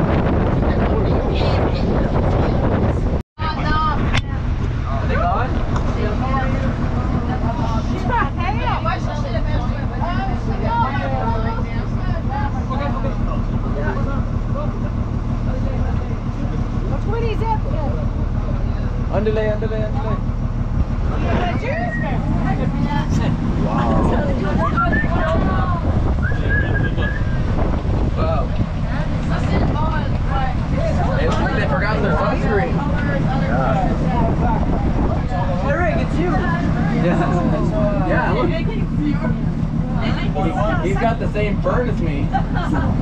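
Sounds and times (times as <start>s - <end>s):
truck engine running: 0.0s - 43.0s
indistinct voices talking: 0.1s - 43.0s.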